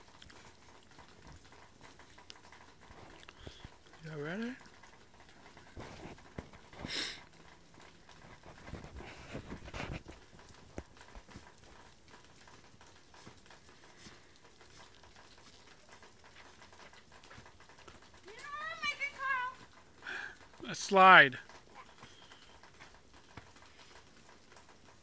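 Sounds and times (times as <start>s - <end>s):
child speaking: 18.2s - 19.6s.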